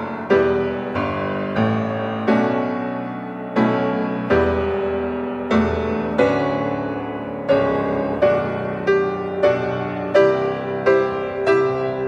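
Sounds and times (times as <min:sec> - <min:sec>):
slow piano chords: 0:00.0 - 0:12.0.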